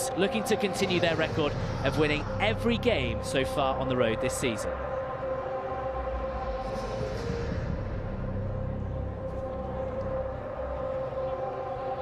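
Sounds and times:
low ambient rumble: 0.0 - 11.8.

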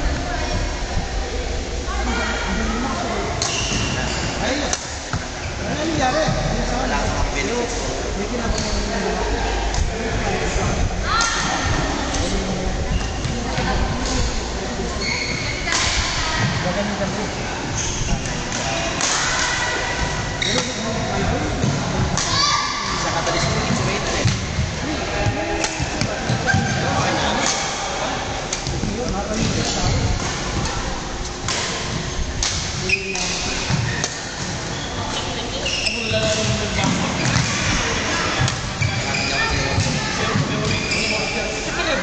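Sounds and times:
voices talking: 0.0 - 42.0
shoe squeaks: 3.4 - 4.5, 8.5 - 9.0, 14.9 - 15.7, 32.8 - 37.5, 38.8 - 41.6.

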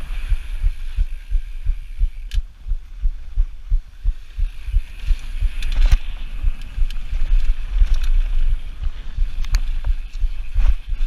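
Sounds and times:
wind buffeting microphone: 0.0 - 11.0
sharp click: 2.2 - 2.5.

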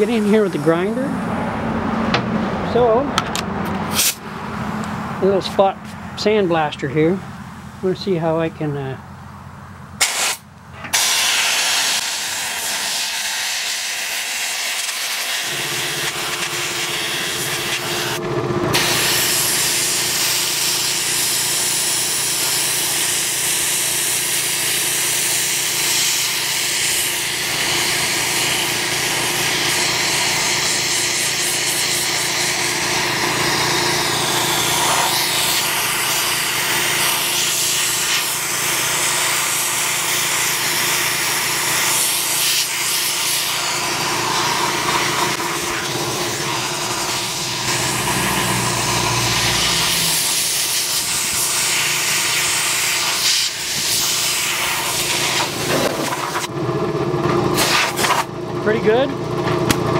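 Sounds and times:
sandblaster hissing: 0.0 - 1.1, 3.9 - 4.2, 10.0 - 56.5, 57.5 - 58.3.

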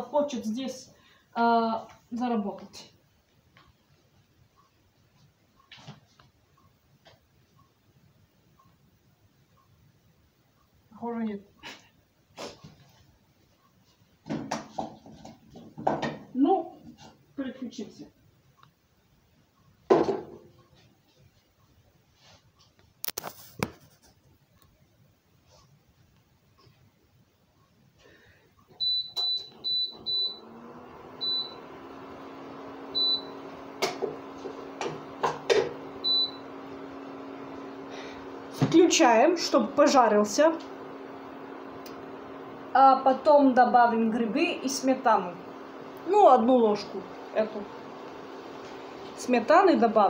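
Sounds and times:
cooktop humming: 28.0 - 50.0.

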